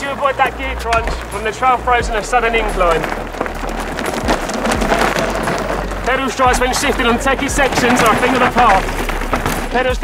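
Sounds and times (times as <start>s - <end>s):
bike tyres crunching on gravel: 0.0s - 10.0s
stones clicking: 0.0s - 10.0s.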